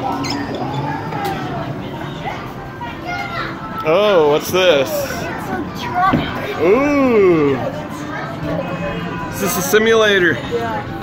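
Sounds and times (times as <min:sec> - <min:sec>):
children's voices and chatter: 0:00.0 - 0:11.0.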